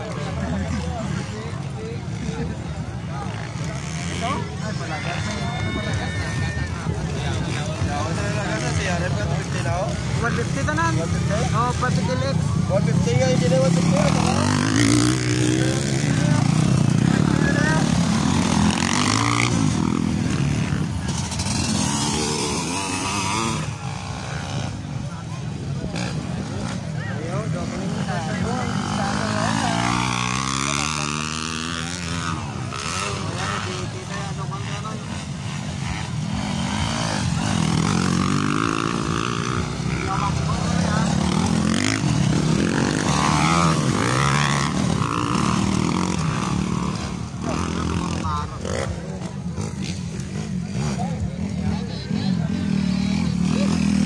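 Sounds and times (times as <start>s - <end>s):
crowd voices chattering: 0.0s - 54.0s
dirt bike engines revving: 0.0s - 54.0s.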